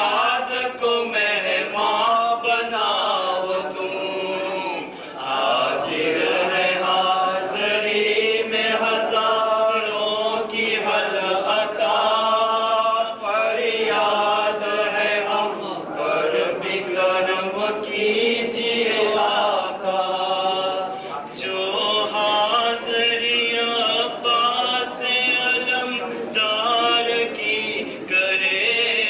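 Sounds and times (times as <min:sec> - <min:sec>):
men chanting in unison: 0:00.0 - 0:29.0.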